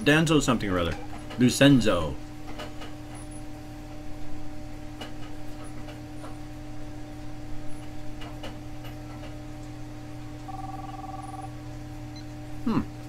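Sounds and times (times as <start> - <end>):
electrical hum: 0.0 - 13.0
telephone ringing: 10.4 - 11.6.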